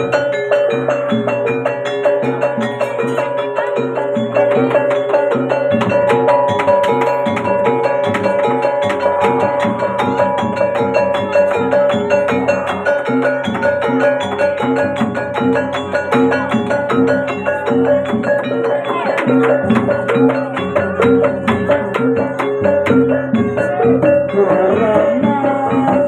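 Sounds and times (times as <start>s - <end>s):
gong-chimes and metallophones: 0.0s - 26.0s
hand drum: 0.0s - 26.0s.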